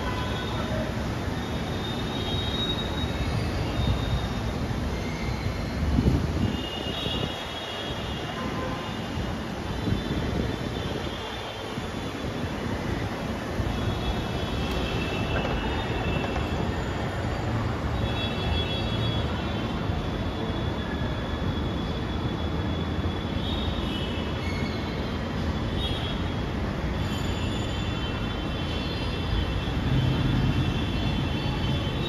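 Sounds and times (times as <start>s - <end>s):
train rumbling on track: 13.1s - 17.9s
high wheel squeals: 13.7s - 17.8s.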